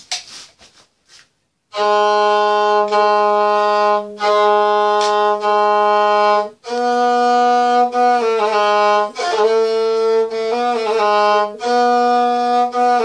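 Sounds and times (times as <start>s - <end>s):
bowed single-string folk instrument: 1.7s - 13.0s.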